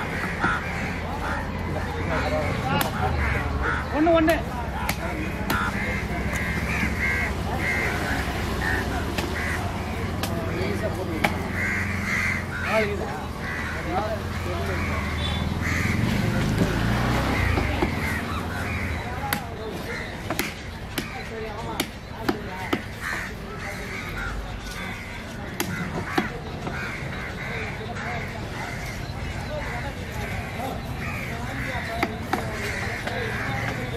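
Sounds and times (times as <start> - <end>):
crows cawing: 0.0 - 16.6, 17.2 - 33.9.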